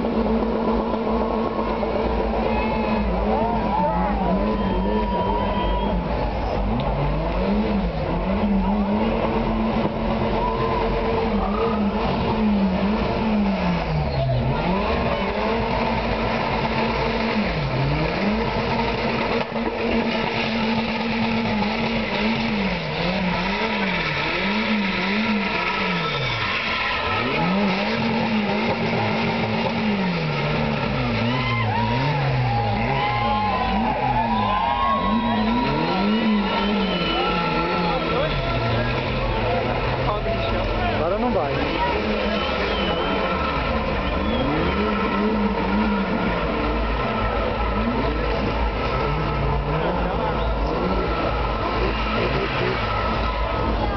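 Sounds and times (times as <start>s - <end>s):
car engine revving high: 0.0s - 53.9s
tyres squealing: 19.9s - 53.9s.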